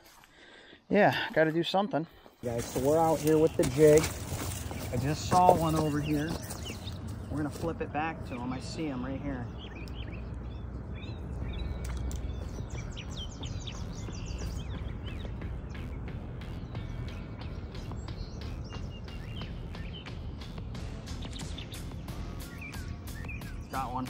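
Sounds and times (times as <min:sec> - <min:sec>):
small birds chirping: 0:00.0 - 0:24.0
steady low rumble: 0:02.5 - 0:23.7.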